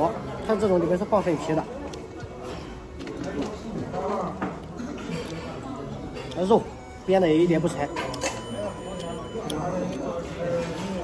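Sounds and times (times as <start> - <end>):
chatter of diners: 0.0 - 11.0
tableware clicking and clinking: 7.6 - 11.0.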